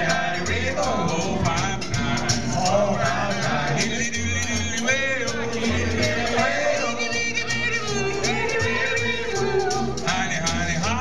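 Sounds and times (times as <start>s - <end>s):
early jazz band playing: 0.0s - 11.0s.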